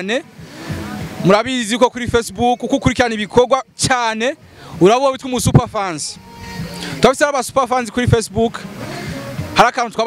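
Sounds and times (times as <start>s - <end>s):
man talking into microphone: 0.0s - 0.3s, 1.2s - 8.8s, 9.5s - 10.0s.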